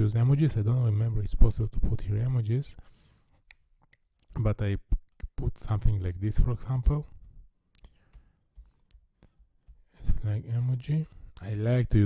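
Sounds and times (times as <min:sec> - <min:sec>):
computer keyboard keystrokes: 0:07.2 - 0:09.9.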